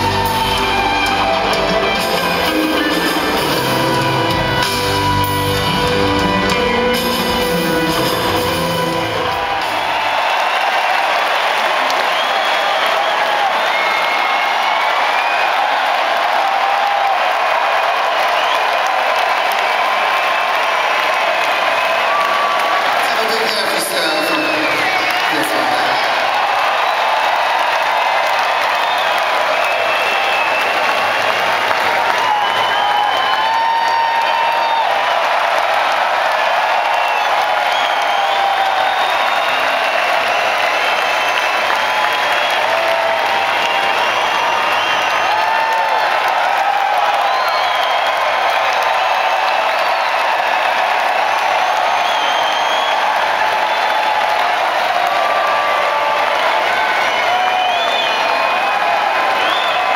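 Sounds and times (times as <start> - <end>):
crowd applauding and cheering: 0.0 - 59.9.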